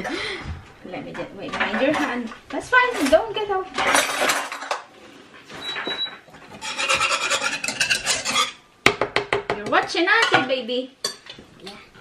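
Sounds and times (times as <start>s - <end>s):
whisk scraping in a saucepan: 6.5s - 8.6s.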